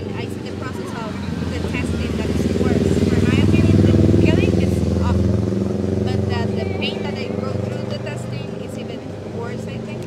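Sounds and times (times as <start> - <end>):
vehicle engine passing: 0.0 - 10.0.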